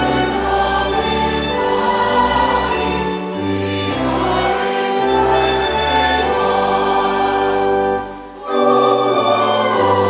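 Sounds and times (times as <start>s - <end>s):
choir singing a hymn: 0.0s - 10.0s
pipe organ: 0.0s - 10.0s.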